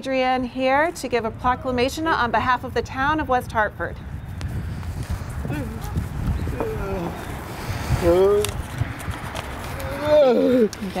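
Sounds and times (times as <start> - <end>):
faint voices: 5.4 - 7.4.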